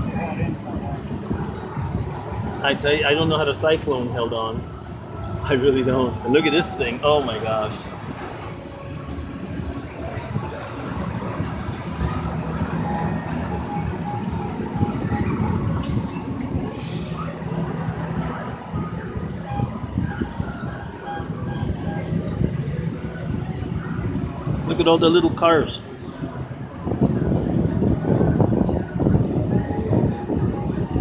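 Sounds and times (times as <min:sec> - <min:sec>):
low rumble and rushing: 0:00.0 - 0:06.2.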